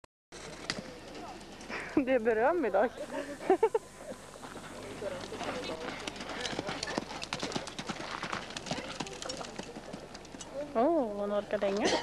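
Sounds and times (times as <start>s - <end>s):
horse hoofbeats on sand: 5.6s - 10.2s.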